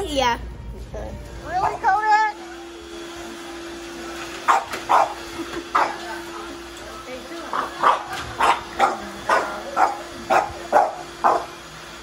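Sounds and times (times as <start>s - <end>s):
dog barking: 4.5s - 5.2s, 5.8s - 6.0s, 7.5s - 11.6s.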